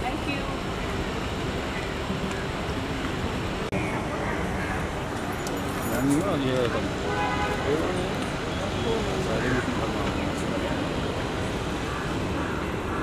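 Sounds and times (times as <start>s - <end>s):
steady background noise: 0.0s - 13.0s
people talking indistinctly: 3.9s - 11.1s.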